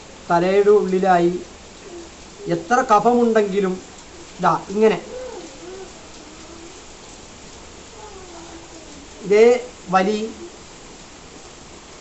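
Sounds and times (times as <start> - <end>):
steady quiet hiss: 0.0 - 12.0
dove cooing: 1.6 - 10.7.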